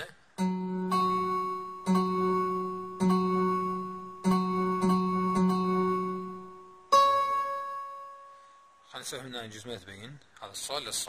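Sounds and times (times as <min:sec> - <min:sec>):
keyboard chords ringing: 0:00.4 - 0:08.8.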